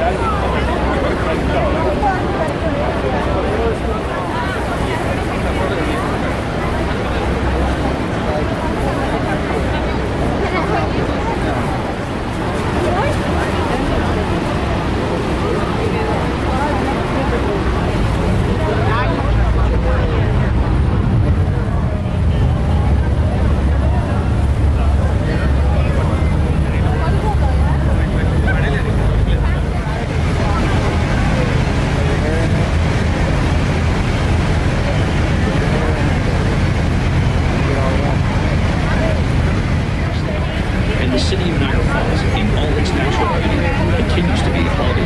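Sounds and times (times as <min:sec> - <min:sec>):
boat engine low rumble: 0:00.0 - 0:45.0
passengers chattering: 0:00.0 - 0:45.0.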